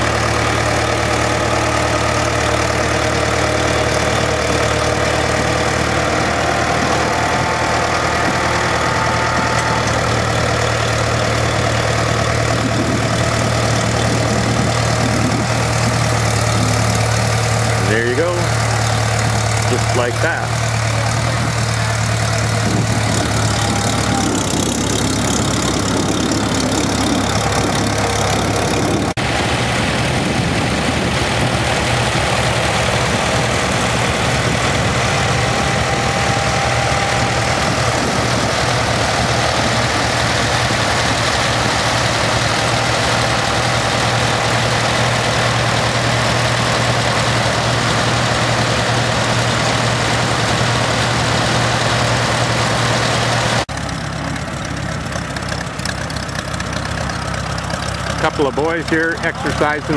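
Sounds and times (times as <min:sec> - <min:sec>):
tractor engine idling: 0:00.0 - 0:59.9.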